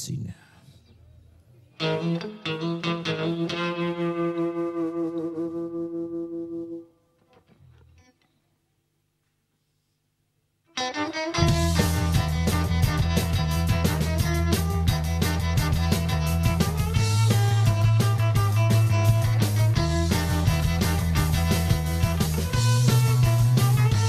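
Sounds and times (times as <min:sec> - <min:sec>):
electric guitar picked figure: 0:01.8 - 0:06.8, 0:10.8 - 0:24.0
rock band playing loud: 0:11.0 - 0:24.0.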